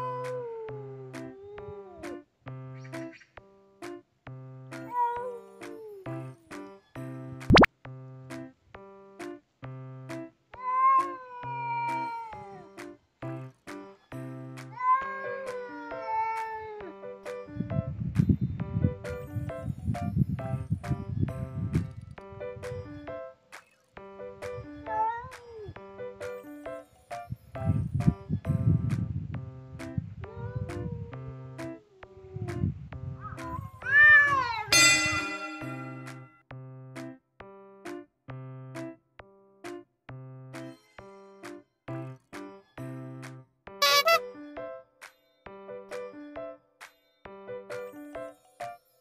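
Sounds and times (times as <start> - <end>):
cat wailing yowls: 0.0 - 2.0, 4.9 - 6.1, 10.6 - 12.7, 14.7 - 16.9, 24.9 - 25.8, 33.2 - 35.6
cat harsh screech: 43.8 - 44.2.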